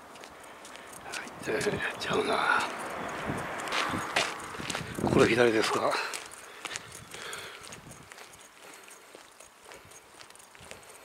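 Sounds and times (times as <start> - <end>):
footsteps on asphalt: 0.0 - 11.0.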